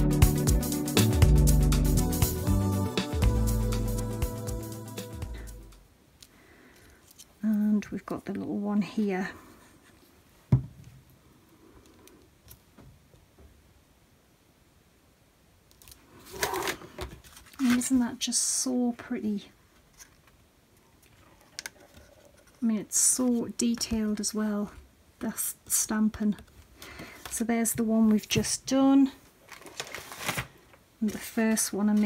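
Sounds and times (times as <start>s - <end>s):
paper card rustling and scraping: 16.2s - 18.0s, 21.0s - 22.6s, 29.4s - 32.0s.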